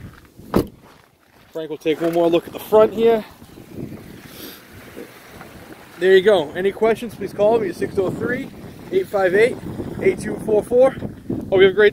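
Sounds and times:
wind on microphone: 2.3 - 11.9.

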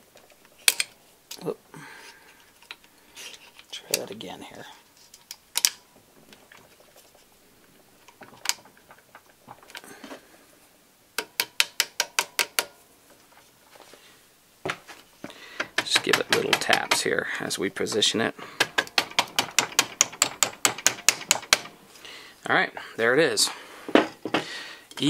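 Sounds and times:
small metal parts clicking: 5.0 - 5.8.

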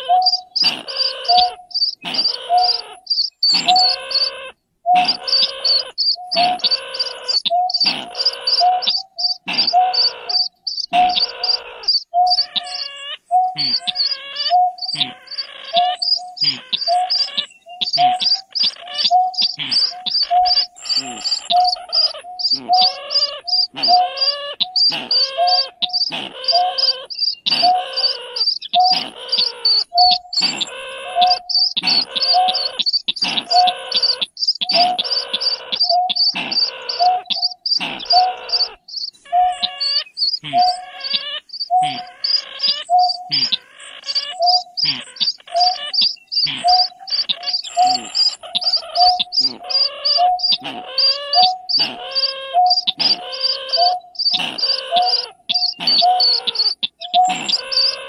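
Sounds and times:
recorded bird calls: 0.0 - 58.0.

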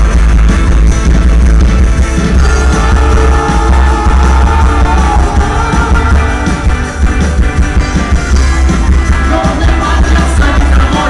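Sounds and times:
drums: 0.0 - 11.0
electric guitar: 0.0 - 11.0
heavy low bass: 0.0 - 11.0.

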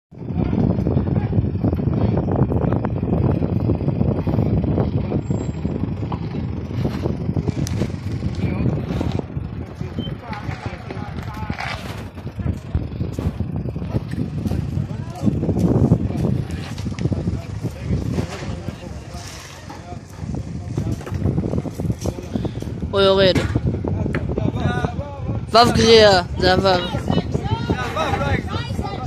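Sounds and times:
people's voices: 0.2 - 29.0
car engine at low revs: 0.4 - 22.9.

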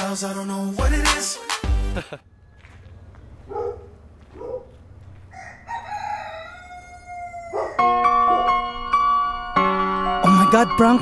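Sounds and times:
rooster crowing: 5.3 - 8.5.

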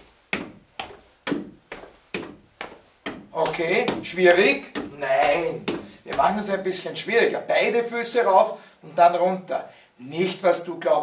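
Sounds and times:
sneakers stepping on wooden chair: 0.0 - 6.6.

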